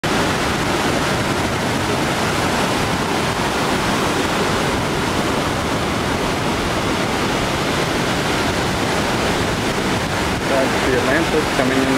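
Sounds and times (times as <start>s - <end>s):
ocean waves washing on beach: 0.0s - 11.9s.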